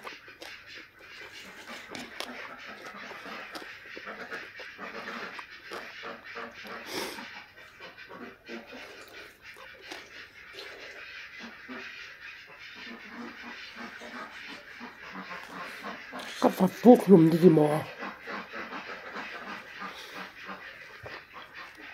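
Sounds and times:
fingers mixing rice clicks: 0.0 - 7.2
close-up chewing: 0.0 - 12.0, 12.7 - 21.9
duck quacking: 0.4 - 21.9.

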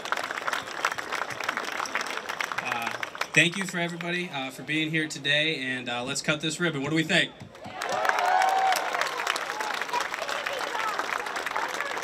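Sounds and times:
crowd applauding and cheering: 0.0 - 4.2, 7.5 - 12.0.

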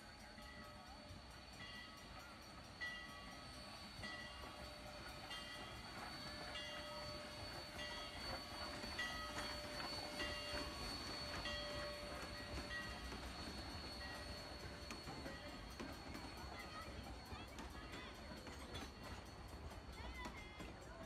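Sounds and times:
train rolling past rumbling: 0.0 - 21.0
crossing bell dinging: 0.3 - 20.2.

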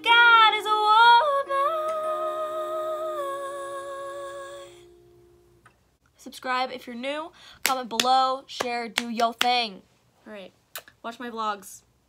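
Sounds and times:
held chord ringing: 0.2 - 5.9.

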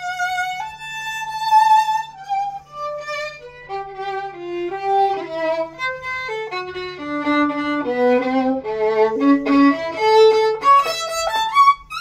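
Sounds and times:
solo violin bowed: 0.0 - 12.0.

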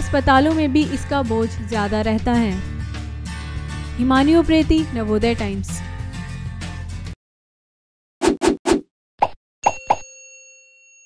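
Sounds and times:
bell-like ding: 9.6 - 11.0.

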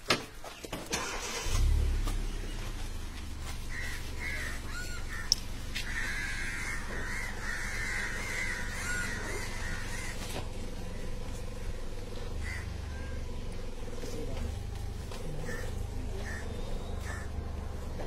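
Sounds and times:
vehicle engine starting and running: 0.6 - 18.0.

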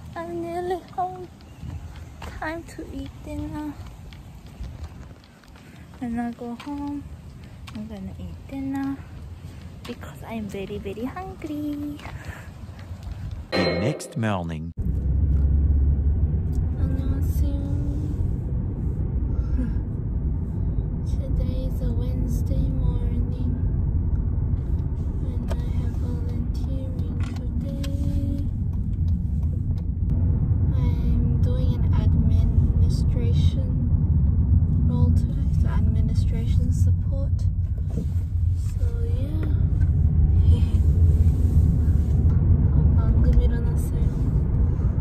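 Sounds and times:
car cabin road and engine rumble: 0.0 - 13.5, 14.2 - 45.0.

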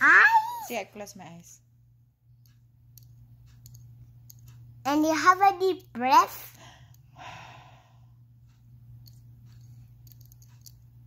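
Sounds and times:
woman breathing out: 6.6 - 8.1.

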